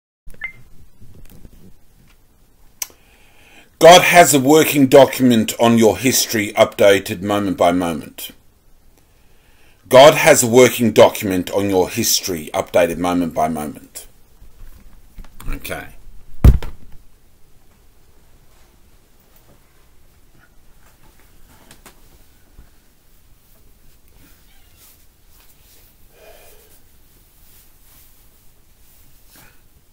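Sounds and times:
faint room noise: 0.3s - 29.9s
dull thump against webcam: 16.4s - 17.0s.

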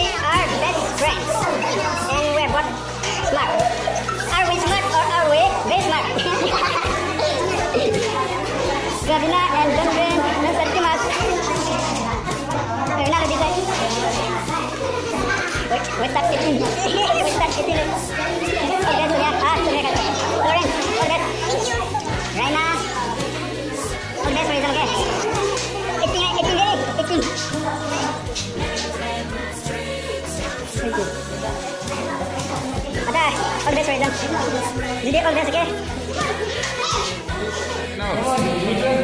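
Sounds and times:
background music: 0.0s - 39.0s
people laughing: 0.0s - 39.0s
young voices talking: 0.0s - 39.0s.

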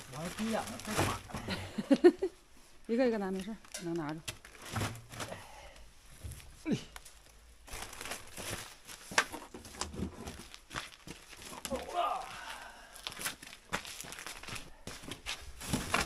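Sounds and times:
plastic sheeting crinkling: 0.0s - 1.3s, 7.1s - 12.3s, 13.0s - 16.0s.

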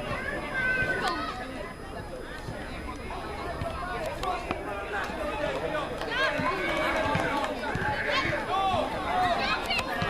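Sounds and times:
children shouting and calling: 0.0s - 4.1s, 6.1s - 10.0s.

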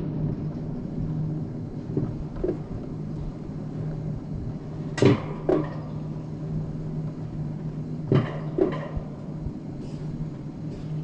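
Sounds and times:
constant low hum: 0.0s - 11.0s
sled wheels rumbling on rails: 0.0s - 11.0s.

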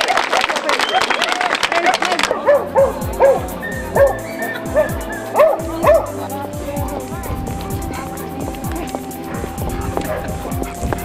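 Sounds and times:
crowd applause: 0.0s - 6.4s
dog barking and yipping: 2.3s - 6.3s, 7.6s - 11.0s
background music with beat: 2.4s - 11.0s.

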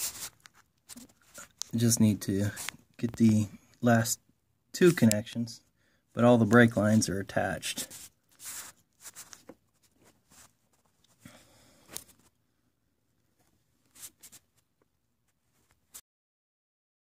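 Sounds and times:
rustling and clicking handling noise: 0.0s - 3.5s, 4.8s - 5.4s, 7.8s - 11.2s, 11.8s - 12.4s.

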